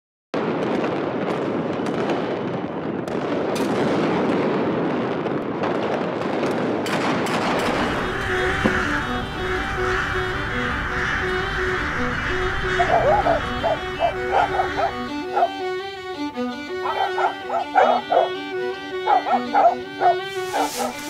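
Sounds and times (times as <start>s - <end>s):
fireworks crackling and banging: 0.4s - 12.6s, 20.2s - 21.0s
music: 7.5s - 21.0s.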